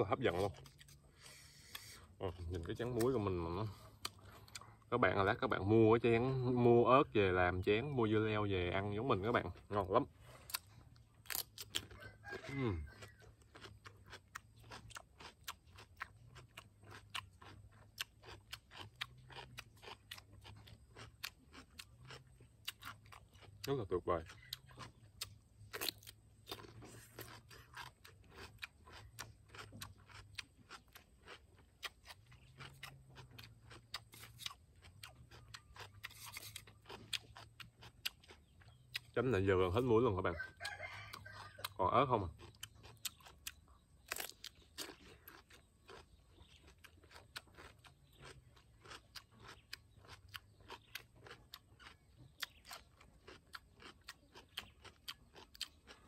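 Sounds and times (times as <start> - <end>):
cucumber being chewed: 0.1 - 56.0.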